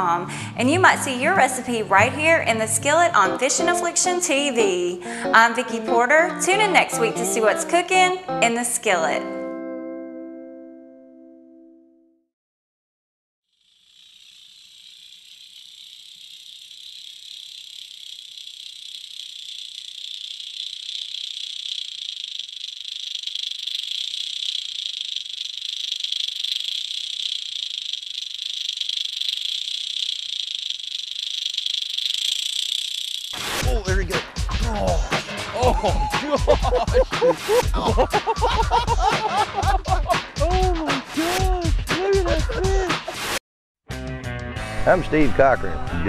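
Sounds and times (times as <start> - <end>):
music: 0.0 - 12.2, 33.4 - 46.0
lure rattling underwater: 14.0 - 33.7.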